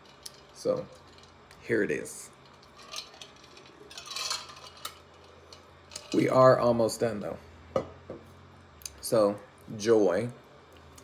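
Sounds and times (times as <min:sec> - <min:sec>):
glass handling rustle: 0:02.3 - 0:06.4.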